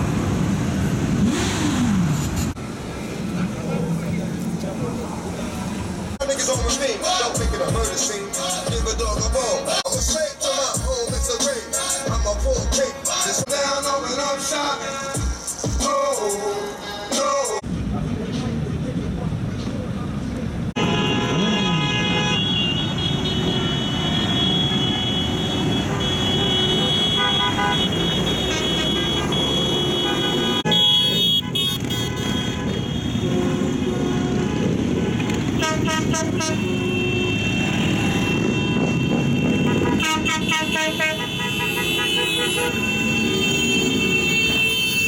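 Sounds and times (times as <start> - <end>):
traffic and engine noise: 0.0 - 45.0
vehicle horns sounding: 20.8 - 45.0.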